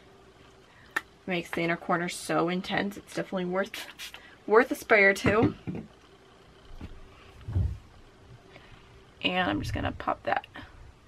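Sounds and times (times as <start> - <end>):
low dull thump: 7.5 - 7.8.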